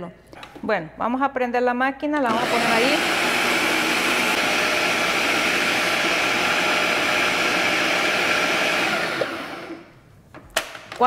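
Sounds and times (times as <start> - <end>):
food processor motor grinding: 2.3 - 9.9.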